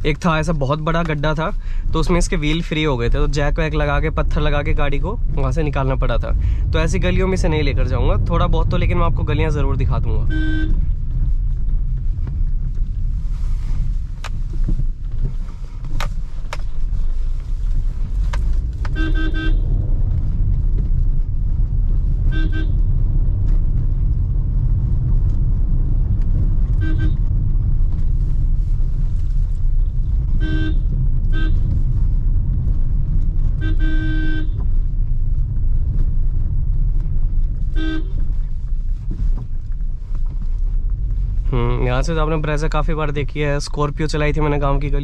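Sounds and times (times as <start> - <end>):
low drone of car driving: 0.0 - 45.0
car horn honks: 10.3 - 10.9, 18.8 - 19.8, 22.3 - 22.9, 26.7 - 27.3, 30.3 - 31.7, 33.5 - 34.7, 37.8 - 38.2.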